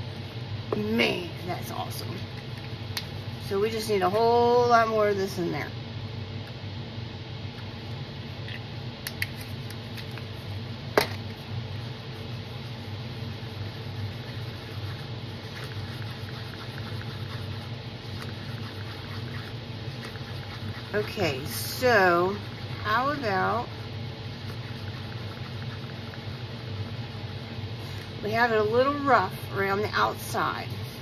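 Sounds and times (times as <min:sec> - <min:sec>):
steady low hum: 0:00.0 - 0:31.0
stick scraping in paper cup: 0:12.2 - 0:23.7, 0:24.3 - 0:26.5.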